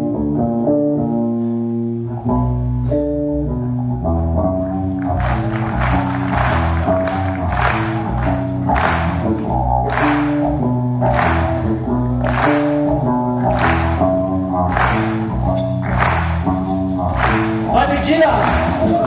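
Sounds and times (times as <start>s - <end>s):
live rock band playing: 2.4s - 19.0s.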